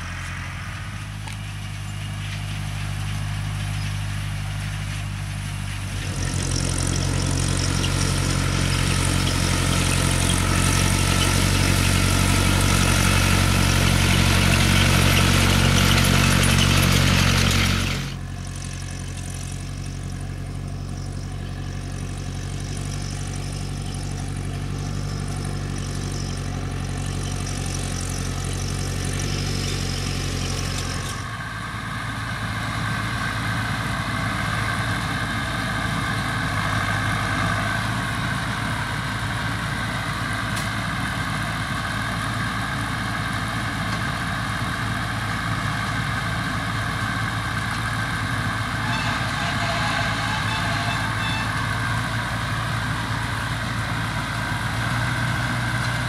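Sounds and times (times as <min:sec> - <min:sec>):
tractor engines running: 0:00.0 - 0:56.0.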